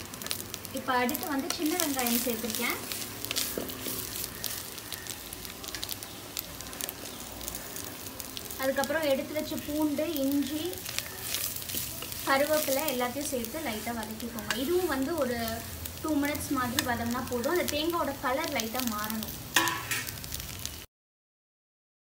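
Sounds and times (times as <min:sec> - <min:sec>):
food frying and crackling in oil: 0:00.0 - 0:20.9
wooden spatula stirring: 0:00.1 - 0:17.7.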